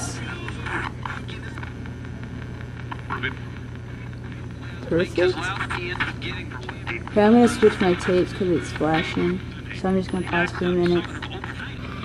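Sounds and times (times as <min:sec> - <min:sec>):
radio scanner hum and static: 0:00.0 - 0:12.0.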